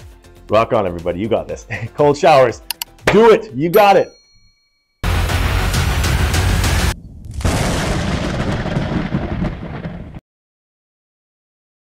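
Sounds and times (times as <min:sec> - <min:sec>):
explosion rumble: 0:06.6 - 0:10.2.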